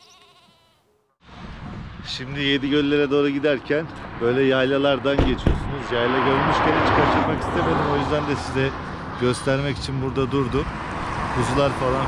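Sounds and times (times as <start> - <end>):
farm animal bleating: 0.0 - 0.9
outdoor noise rushing: 1.2 - 12.0.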